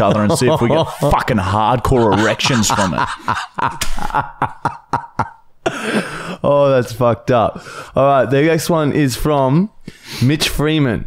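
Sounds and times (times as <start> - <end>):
man laughing breathily: 0.8 - 6.4.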